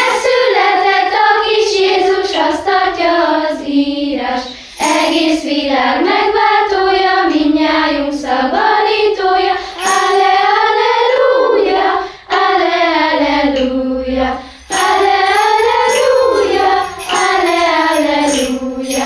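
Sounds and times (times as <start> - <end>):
children singing together: 0.0 - 19.0.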